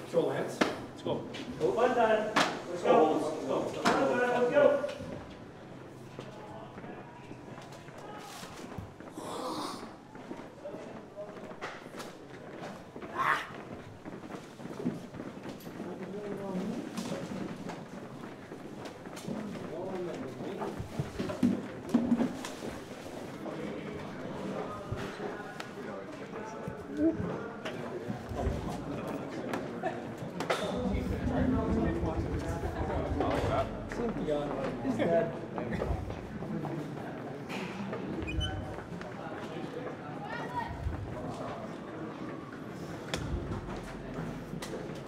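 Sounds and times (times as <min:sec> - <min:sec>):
footsteps in corridor: 0:00.0 - 0:45.0
indistinct voices: 0:30.5 - 0:36.8.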